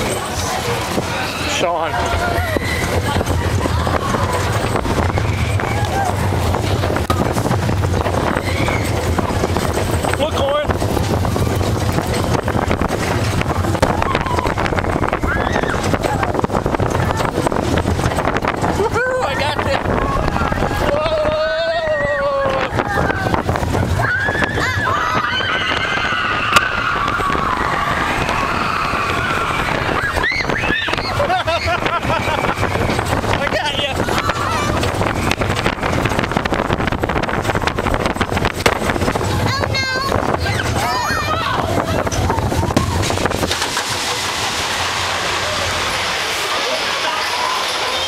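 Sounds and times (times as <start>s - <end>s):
roller coaster rumble: 0.0s - 48.0s
riders screaming: 1.1s - 3.2s, 8.1s - 9.4s, 13.8s - 16.3s, 24.0s - 36.2s.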